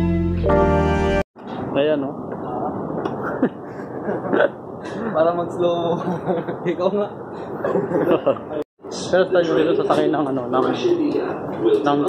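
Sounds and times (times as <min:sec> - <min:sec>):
background music: 0:00.0 - 0:01.2
steady background hum: 0:01.4 - 0:12.0.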